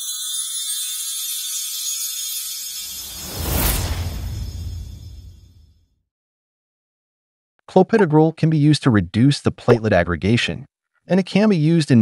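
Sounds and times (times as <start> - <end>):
high glittering shimmer: 0.0 - 5.8
low rumble building to whoosh: 2.9 - 5.7.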